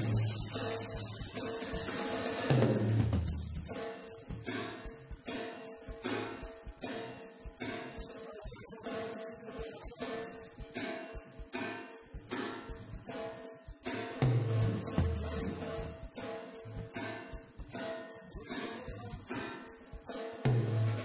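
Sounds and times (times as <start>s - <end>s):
light drums: 0.0s - 21.0s
rhythmic guitar strumming: 0.0s - 21.0s.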